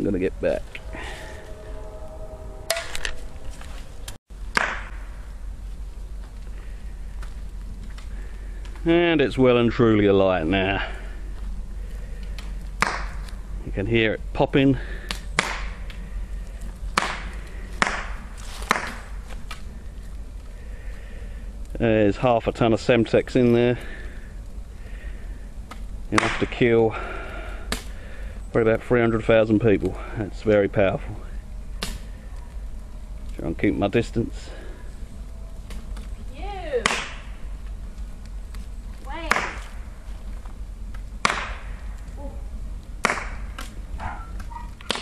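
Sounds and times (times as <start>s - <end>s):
low wind rumble: 0.0s - 44.9s
sharp pop: 4.5s - 5.0s, 12.8s - 13.2s, 15.4s - 15.8s, 36.8s - 37.3s, 39.3s - 39.7s, 41.2s - 41.7s, 43.0s - 43.7s
burning television popping and cracking: 4.5s - 5.1s, 6.1s - 8.9s, 11.4s - 13.4s, 15.0s - 20.6s, 24.4s - 26.7s, 27.7s - 28.0s, 31.7s - 33.4s, 35.6s - 45.0s.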